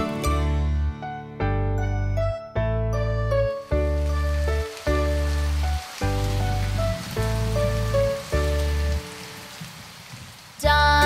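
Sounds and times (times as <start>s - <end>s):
children's keyboard tune: 0.0s - 9.1s
rain pattering: 3.4s - 11.0s.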